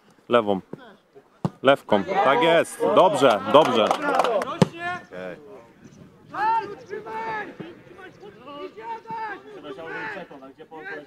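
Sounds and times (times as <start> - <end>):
men calling out and talking: 0.3 - 11.0.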